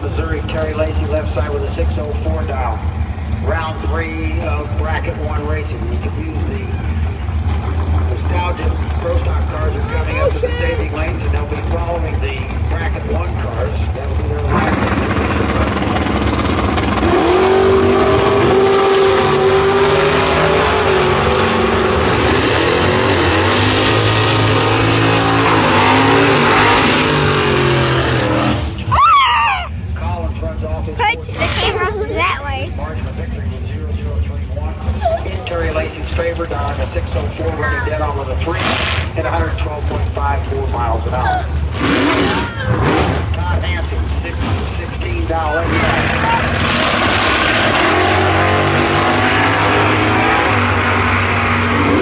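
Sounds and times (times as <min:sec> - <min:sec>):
drag racing engines revving: 0:00.0 - 0:28.9, 0:29.6 - 0:52.0
announcer over public address: 0:30.8 - 0:32.9.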